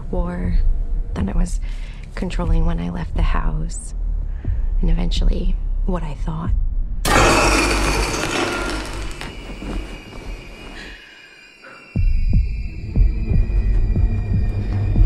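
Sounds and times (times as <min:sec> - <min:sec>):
pulsing low thumps: 0:00.0 - 0:07.1, 0:12.0 - 0:15.0.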